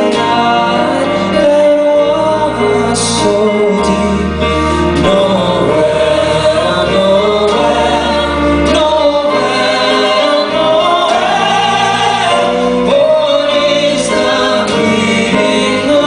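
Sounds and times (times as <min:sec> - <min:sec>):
people singing in harmony: 0:00.0 - 0:16.0
piano accompaniment: 0:00.0 - 0:16.0.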